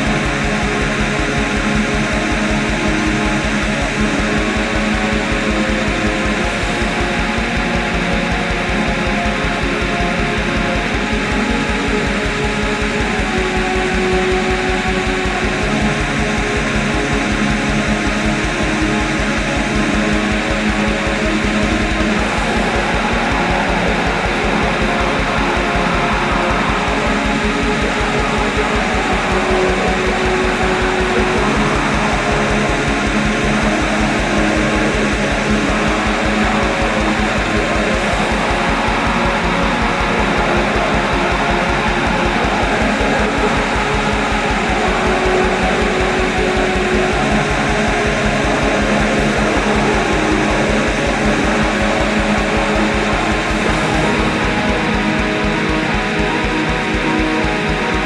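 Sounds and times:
distorted guitars: 0.0s - 58.0s
fast drumming: 0.0s - 58.0s.

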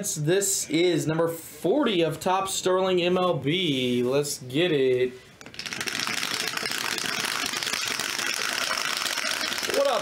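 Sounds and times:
dice rattling in plastic dome: 5.4s - 10.0s.

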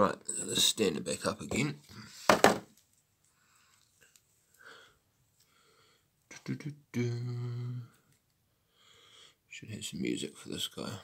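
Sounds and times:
sharp knocks on hard object: 2.3s - 2.6s.

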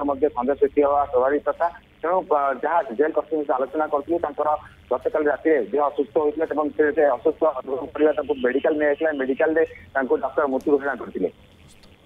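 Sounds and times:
man speaking over telephone: 0.0s - 11.4s.

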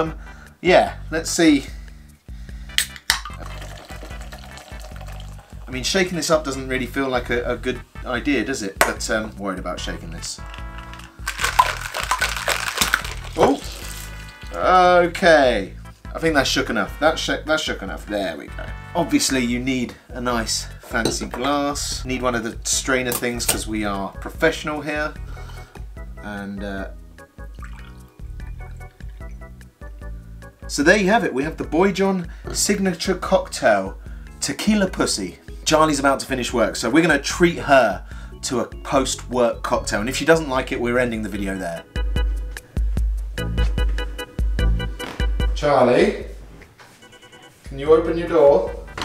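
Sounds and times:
background music with bass line: 0.0s - 46.5s, 47.1s - 49.0s
can cracking open with hiss: 2.8s - 3.5s, 10.5s - 14.5s
drink fizzing: 3.1s - 5.7s, 10.5s - 14.6s, 27.4s - 29.5s
cocktail pouring into a glass: 3.2s - 5.7s, 10.5s - 14.6s, 27.4s - 29.5s.

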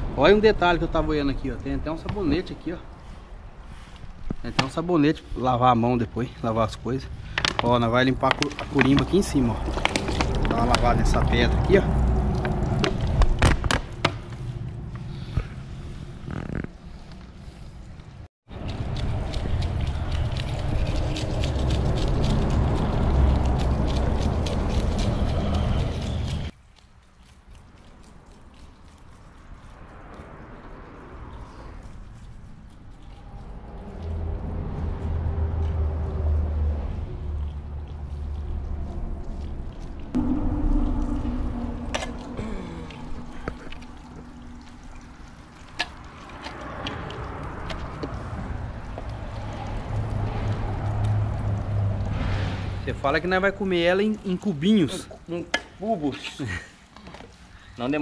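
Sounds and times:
low rumble: 7.2s - 26.5s, 33.0s - 54.0s
tone sliding down in pitch: 40.2s - 45.2s.

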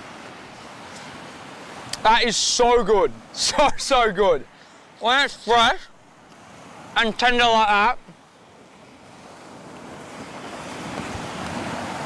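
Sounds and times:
surf breaking on beach: 0.0s - 12.0s
wind on microphone: 9.0s - 12.0s.

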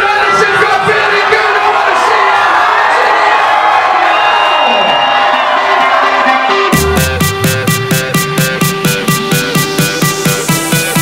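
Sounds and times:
crowd cheering and whooping: 0.0s - 7.9s
electronic dance track: 4.7s - 11.0s.

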